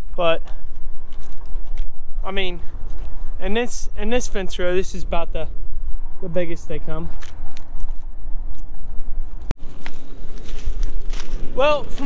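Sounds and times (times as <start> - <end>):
wind on microphone: 0.0 - 12.0
footsteps crunching dry brush: 0.5 - 3.6, 7.0 - 12.0
twigs cracking: 0.8 - 2.0, 9.6 - 12.0.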